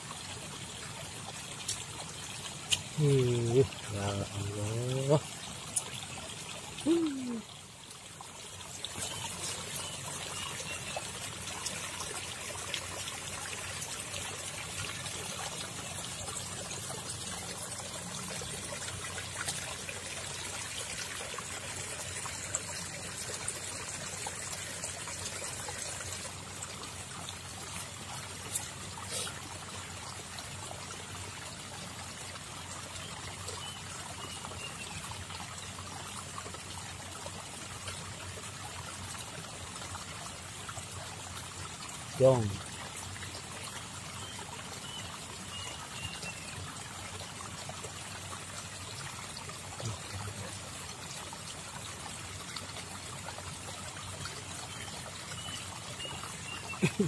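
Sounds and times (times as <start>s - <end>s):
shallow water trickling over stones: 0.0s - 57.0s.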